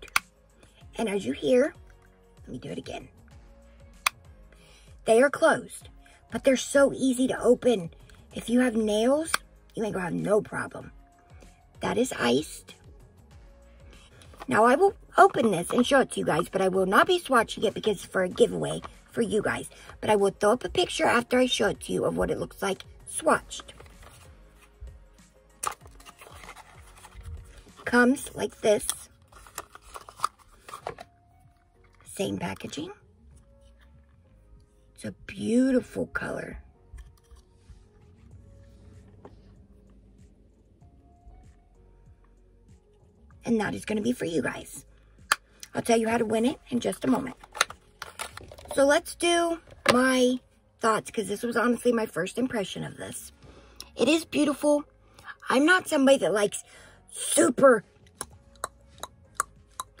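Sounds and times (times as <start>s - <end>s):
sharp clicks and rustles: 47.3s - 48.8s.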